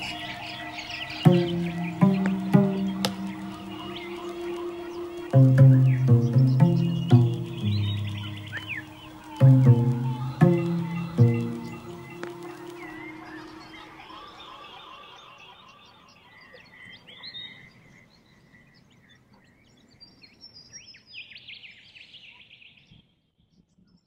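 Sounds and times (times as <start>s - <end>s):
music: 0.0s - 15.1s
wild birds calling and chirping: 0.0s - 22.7s.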